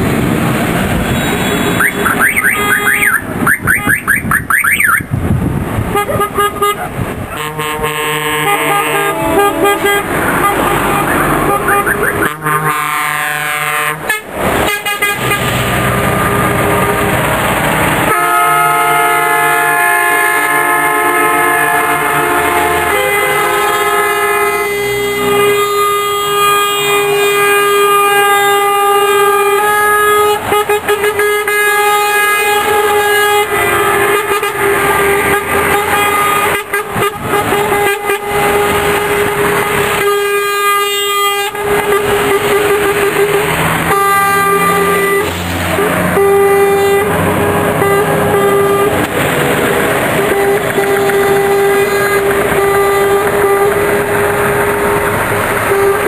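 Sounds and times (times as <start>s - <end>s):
diesel engines rumbling: 0.0s - 56.0s
truck air horns blasting: 0.8s - 5.1s, 5.9s - 56.0s.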